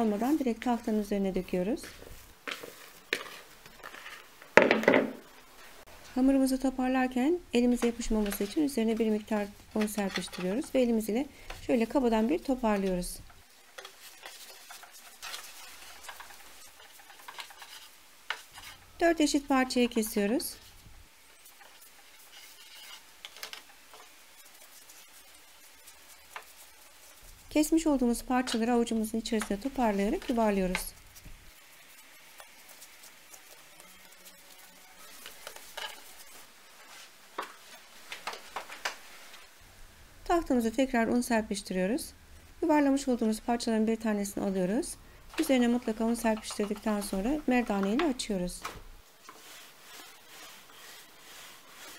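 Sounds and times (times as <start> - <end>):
hands rolling dough rustling: 0.0 - 39.5, 42.8 - 51.9.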